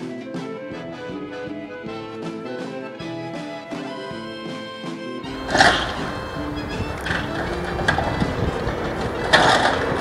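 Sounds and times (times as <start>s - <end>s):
song playing: 0.0s - 10.0s
loud metallic screech: 5.3s - 8.5s
demolition machinery tearing metal: 5.4s - 10.0s.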